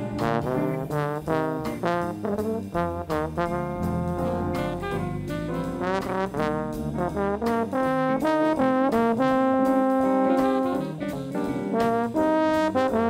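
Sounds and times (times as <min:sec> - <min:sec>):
jazz horn section: 0:00.0 - 0:13.0
jazz rhythm section: 0:00.0 - 0:13.0.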